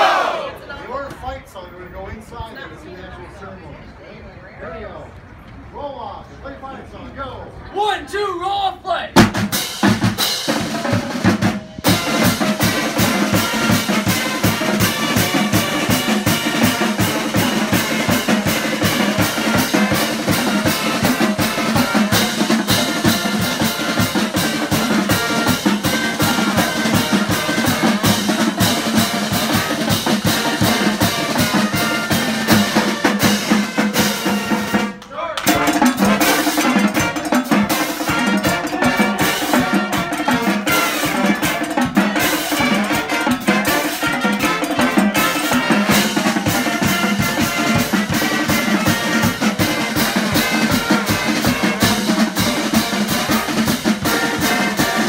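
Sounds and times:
marching band playing: 0.0s - 1.2s, 7.8s - 55.0s
snare drum roll: 9.2s - 55.0s.

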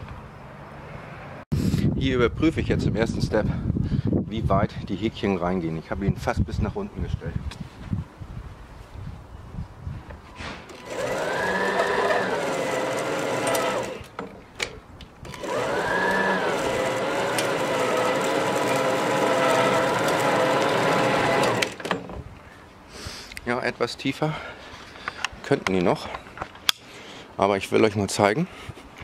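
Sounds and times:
electric motor whining: 10.7s - 14.2s, 15.3s - 21.8s.

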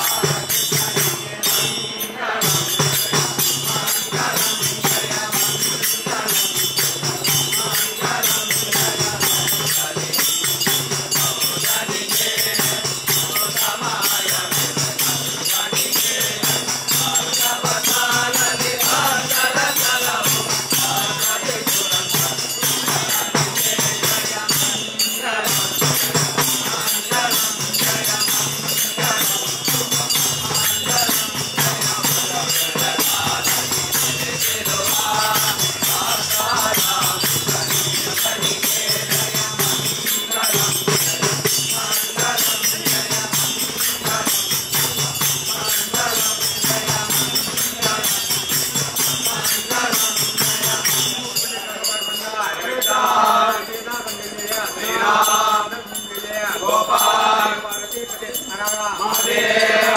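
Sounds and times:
hand cymbals clashing: 0.0s - 59.9s
men chanting together: 0.0s - 59.9s.

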